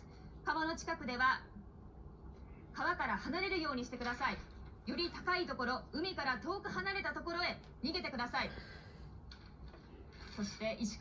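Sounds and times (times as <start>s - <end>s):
low background hum: 0.0s - 11.0s
news announcer through tv speaker: 2.7s - 8.9s.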